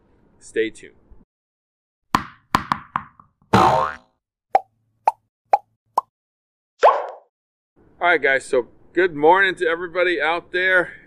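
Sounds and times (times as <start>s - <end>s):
cartoon popping sound effects: 3.5s - 6.1s, 6.8s - 7.3s.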